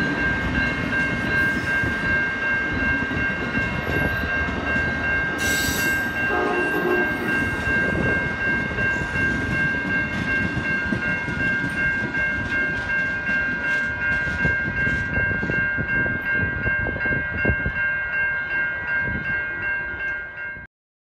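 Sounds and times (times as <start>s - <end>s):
crossing signal ringing: 0.0s - 20.7s
train wheels rumbling on rail: 0.0s - 20.7s.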